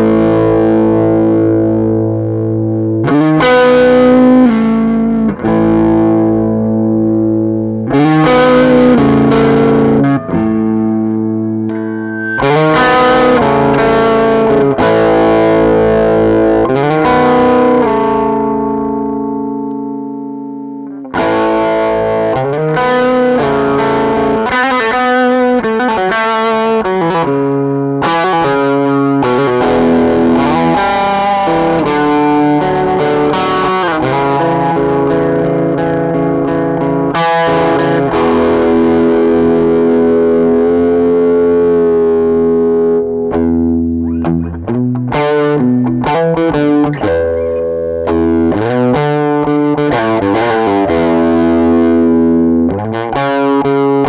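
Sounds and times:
overdriven electric guitar: 0.0 - 54.0.

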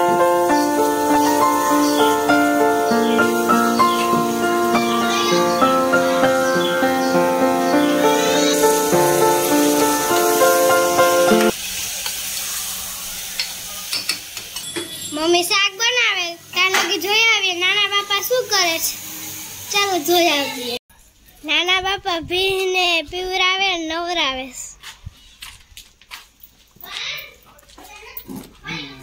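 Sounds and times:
instrumental background music: 0.0 - 11.5
cooking sizzle on stove: 0.0 - 20.8.

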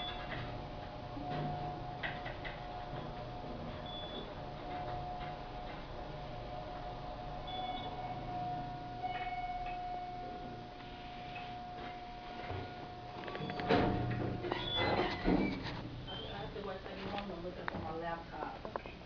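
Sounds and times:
elevator doors sliding open: 0.0 - 6.8, 12.3 - 16.6
elevator whine: 0.0 - 16.8.

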